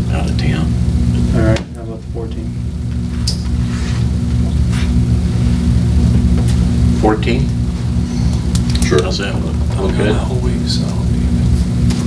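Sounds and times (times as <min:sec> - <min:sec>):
loud low hum with tones: 0:00.0 - 0:12.0.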